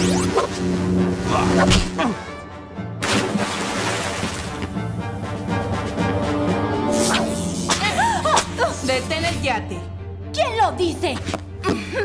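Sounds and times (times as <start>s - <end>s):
action music: 0.0s - 11.1s.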